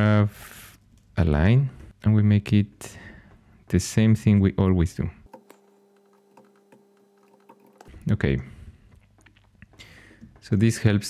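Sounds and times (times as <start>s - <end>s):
computer keyboard keystrokes: 5.3s - 8.0s.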